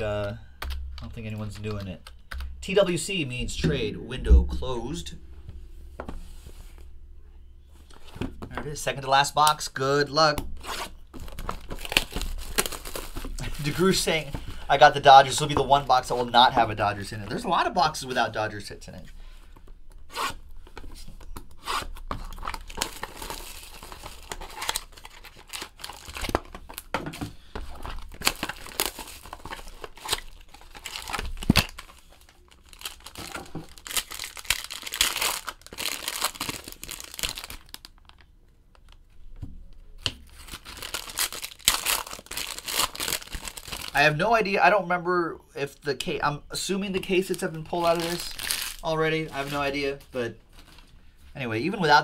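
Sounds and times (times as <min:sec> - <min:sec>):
plastic wrap tearing and crinkling: 0:10.6 - 0:14.3, 0:21.3 - 0:27.0, 0:27.6 - 0:39.0, 0:40.0 - 0:44.1, 0:47.2 - 0:50.9.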